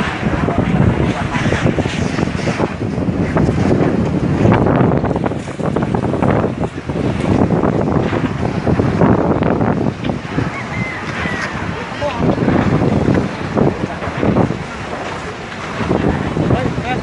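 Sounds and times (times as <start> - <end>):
fire roaring and crackling: 0.0 - 17.0
wind buffeting microphone: 0.0 - 17.0.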